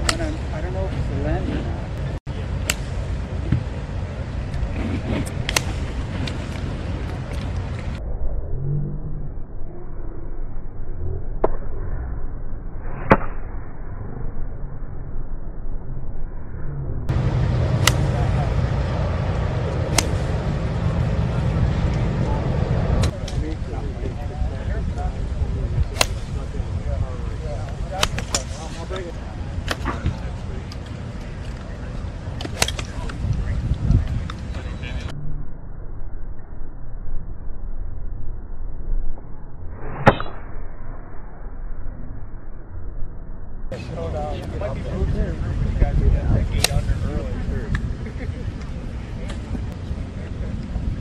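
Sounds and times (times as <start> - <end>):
low outdoor rumble: 0.0 - 51.0
faint murmuring voices: 17.2 - 35.1
golf club striking ball: 17.7 - 18.3, 19.9 - 20.3, 25.9 - 26.4, 28.0 - 28.8, 32.4 - 33.2.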